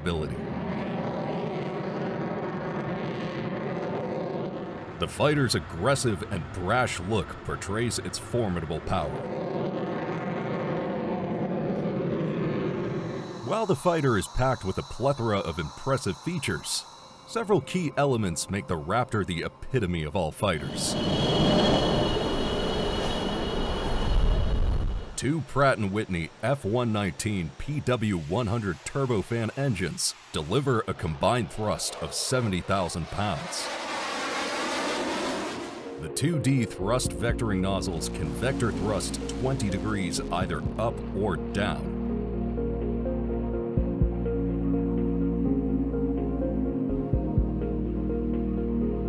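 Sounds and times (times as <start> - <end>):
fighter jet engine: 0.0 - 36.2, 37.8 - 44.4.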